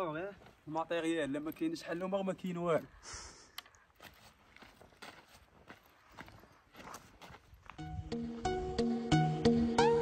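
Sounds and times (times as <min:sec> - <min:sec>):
footsteps on sand: 0:00.1 - 0:01.2, 0:03.8 - 0:08.6.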